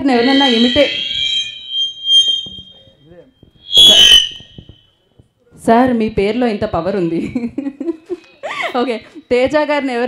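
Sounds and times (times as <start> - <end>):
high-pitched microphone feedback: 0.0 - 5.0, 5.8 - 7.4.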